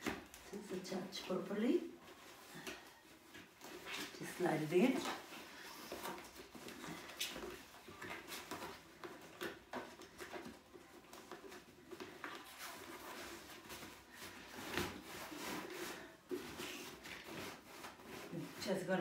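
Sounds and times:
fabric rubbing and rustling: 0.0s - 19.0s.

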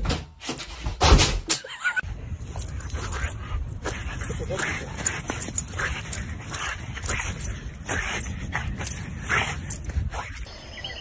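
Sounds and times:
wind rumbling on microphone: 2.1s - 10.5s
paws scraping in sand: 2.4s - 10.5s.

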